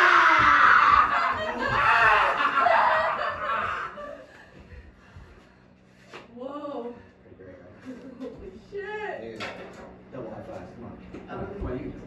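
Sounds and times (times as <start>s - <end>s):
woman laughing maniacally: 0.7s - 4.5s.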